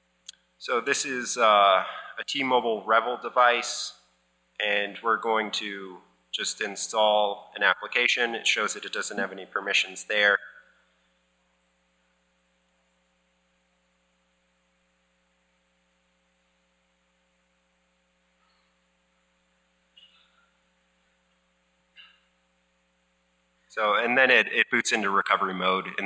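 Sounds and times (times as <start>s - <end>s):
faint electrical hum: 0.0s - 26.0s.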